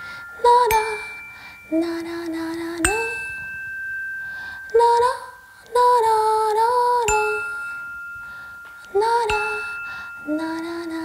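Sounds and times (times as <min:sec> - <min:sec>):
bright ringing ding: 0:00.0 - 0:05.6, 0:07.0 - 0:11.0.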